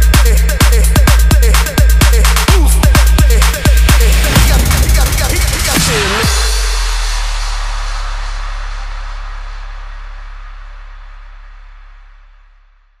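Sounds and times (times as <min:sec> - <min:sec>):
deep bass note: 0:02.5 - 0:13.0.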